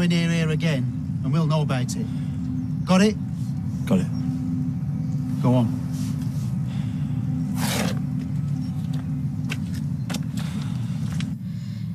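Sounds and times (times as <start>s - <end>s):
low background rumble: 0.0s - 11.9s.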